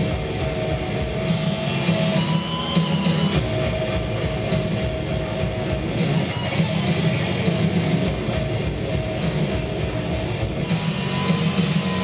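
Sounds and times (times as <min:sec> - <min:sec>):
bass guitar: 0:00.0 - 0:12.0
distorted electric guitar: 0:00.0 - 0:12.0
pounding drum machine beat: 0:00.0 - 0:12.0.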